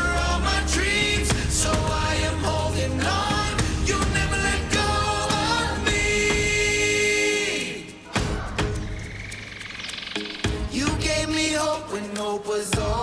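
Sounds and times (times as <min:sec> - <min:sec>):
musical accompaniment with drums: 0:00.0 - 0:07.1, 0:07.7 - 0:13.0
children singing: 0:00.0 - 0:09.0.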